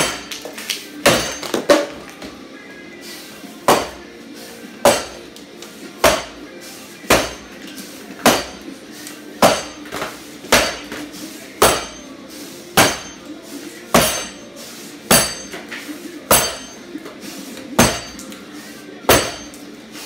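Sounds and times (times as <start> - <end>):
axe chopping wood: 1.1 - 1.8, 3.7 - 4.0, 4.9 - 5.2, 6.0 - 6.4, 7.1 - 7.5, 8.2 - 8.6, 9.4 - 11.0, 11.6 - 12.0, 12.8 - 13.2, 17.8 - 18.2, 19.1 - 19.5.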